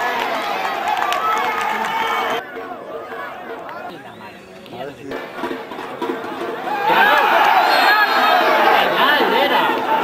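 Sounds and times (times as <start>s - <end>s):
people shouting: 6.6s - 10.0s.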